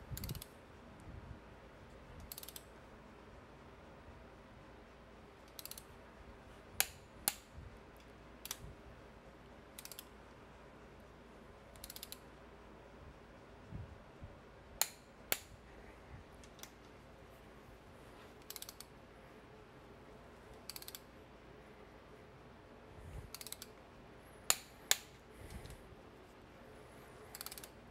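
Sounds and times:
sharp torque wrench clicks: 0:00.1 - 0:00.5, 0:02.2 - 0:02.7, 0:05.4 - 0:05.9, 0:09.8 - 0:10.1, 0:11.7 - 0:12.2, 0:18.4 - 0:18.9, 0:20.6 - 0:21.1, 0:23.3 - 0:23.7, 0:27.3 - 0:27.8
torque wrench ratcheting: 0:00.1 - 0:00.5, 0:02.2 - 0:02.7, 0:05.5 - 0:05.9, 0:11.8 - 0:12.2, 0:18.5 - 0:18.9, 0:20.7 - 0:21.0, 0:23.3 - 0:23.7, 0:27.3 - 0:27.8.

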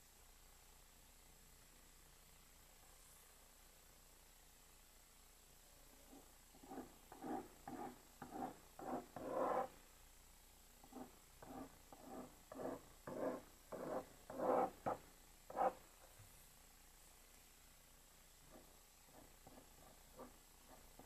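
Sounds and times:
pen scratching on paper: 0:06.1 - 0:09.8, 0:10.8 - 0:15.8, 0:18.5 - 0:21.0.

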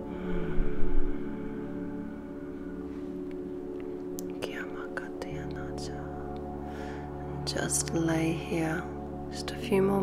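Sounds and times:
ambient meditation music: 0:00.0 - 0:10.0
faint whispering: 0:04.4 - 0:06.3.

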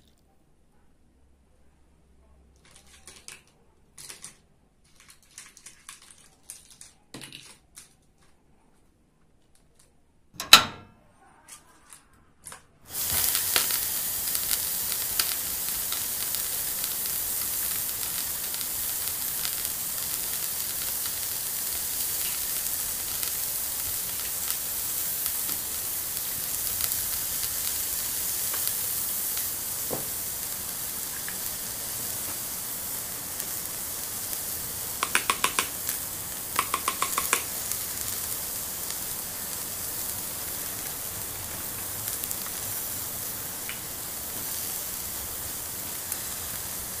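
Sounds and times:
toy stove sizzling: 0:12.9 - 0:47.0
rapid clicks: 0:35.0 - 0:37.5.

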